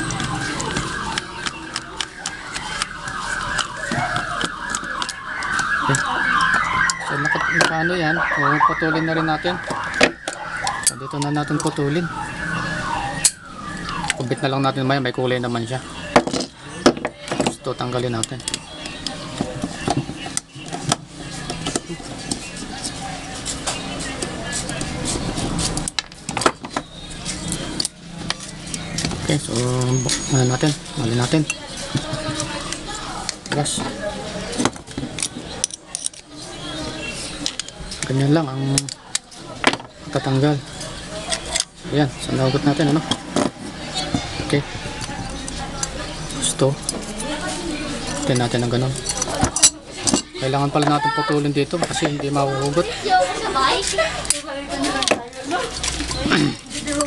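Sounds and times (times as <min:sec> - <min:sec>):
steady background noise: 0:00.0 - 0:57.0
screwdriver clicking and scraping metal: 0:00.1 - 0:07.1, 0:34.8 - 0:36.4, 0:53.8 - 0:57.0.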